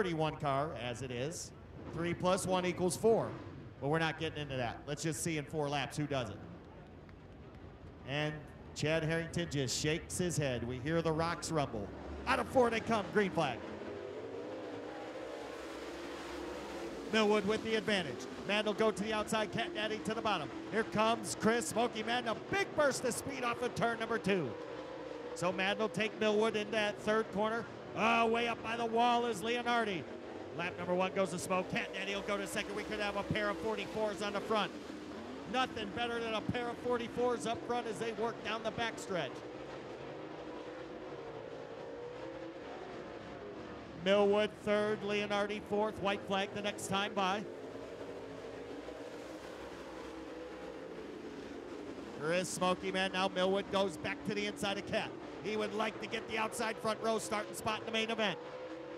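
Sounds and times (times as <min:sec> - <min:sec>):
race car engines running hard: 0:00.0 - 0:58.9.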